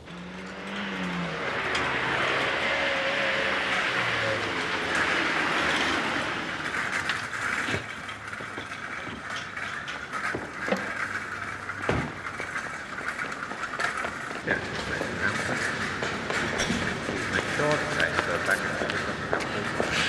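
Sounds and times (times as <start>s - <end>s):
car engine pulling up: 0.0s - 20.0s
road traffic: 0.0s - 20.0s.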